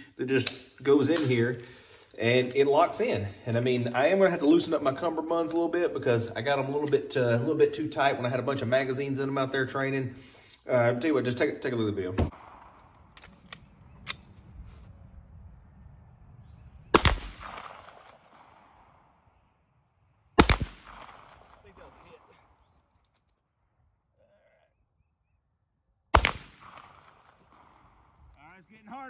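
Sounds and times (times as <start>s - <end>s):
gunshots with echo: 16.9s - 18.9s, 20.4s - 22.4s, 26.1s - 28.0s.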